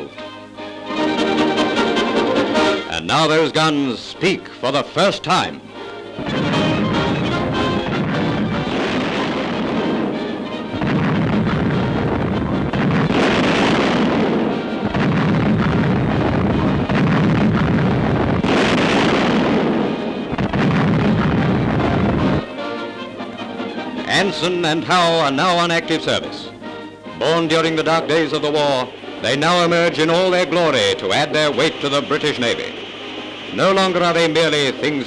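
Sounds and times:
music: 0.0 - 35.0
heavy gunfire booms: 6.2 - 22.8, 27.2 - 35.0.

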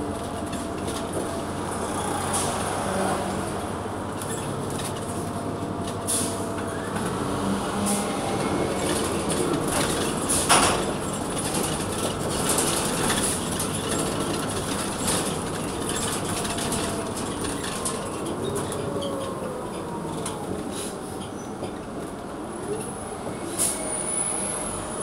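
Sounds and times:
bus engine running: 0.0 - 25.0
road noise: 0.0 - 25.0.

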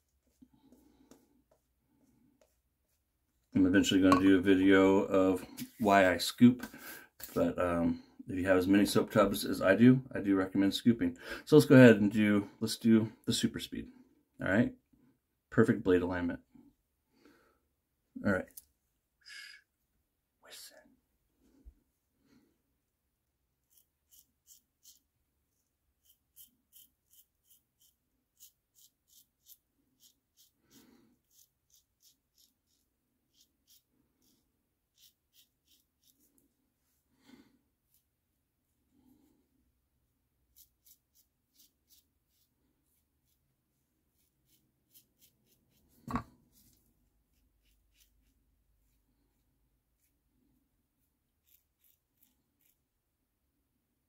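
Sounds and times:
razor scraping stubble: 23.6 - 36.4, 40.5 - 42.5, 44.1 - 49.0, 51.4 - 52.8.

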